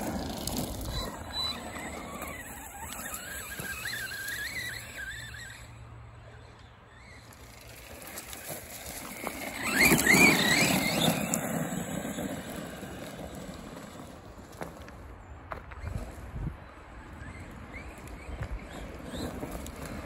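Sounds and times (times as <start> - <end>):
tyres churning over grass: 0.0 - 5.6, 6.9 - 16.3
electric motor whining: 0.0 - 13.4.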